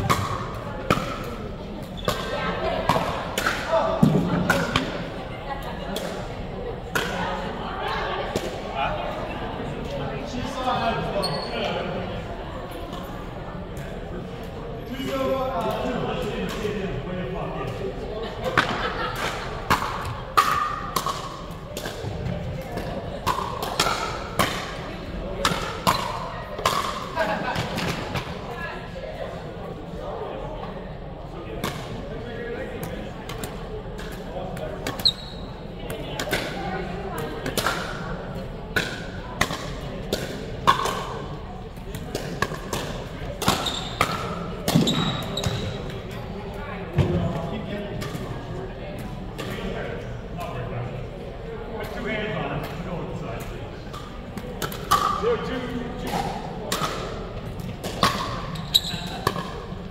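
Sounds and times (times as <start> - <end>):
murmur of voices: 0.0 - 59.9.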